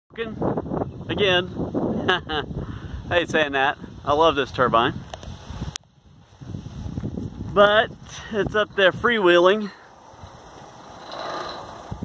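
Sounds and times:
wind turbine whirring: 6.6 - 12.0.

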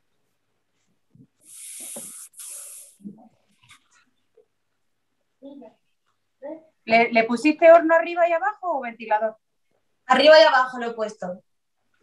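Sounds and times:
faint scattered sounds: 0.1 - 6.9
short hiss bursts: 1.2 - 3.2.

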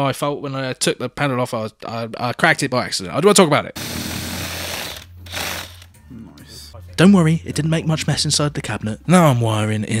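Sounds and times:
power drill boring through acrylic: 3.8 - 5.9.

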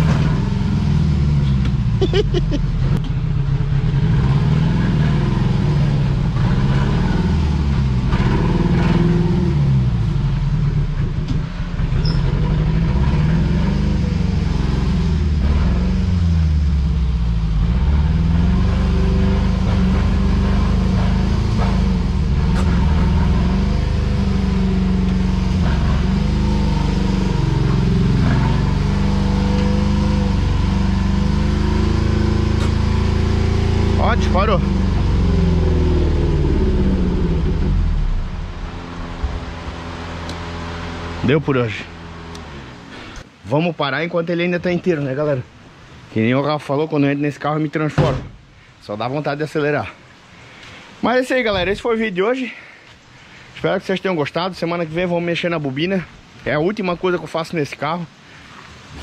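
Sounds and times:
car engine revving: 0.0 - 43.4.

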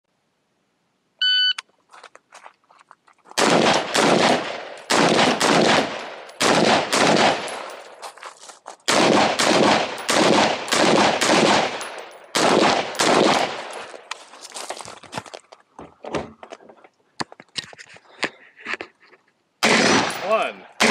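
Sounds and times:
shot timer beep: 1.2 - 1.6
rifle shots in rapid strings: 3.4 - 7.7, 8.9 - 13.8, 19.6 - 20.9.

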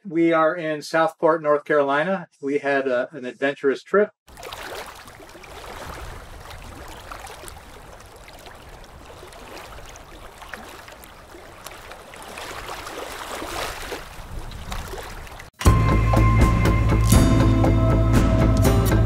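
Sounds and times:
water sloshing and gurgling: 4.3 - 15.6.

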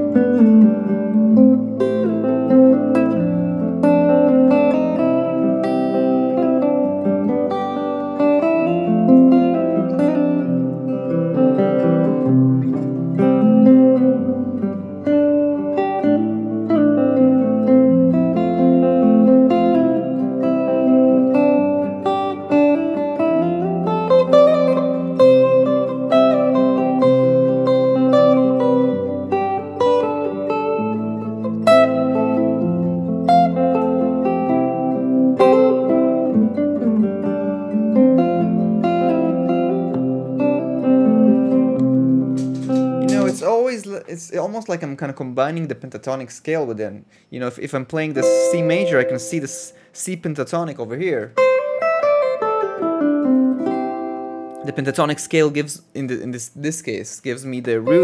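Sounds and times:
electric guitar melodic lines: 0.0 - 44.8, 47.0 - 58.0
low held notes: 48.1 - 50.4, 57.8 - 58.0.

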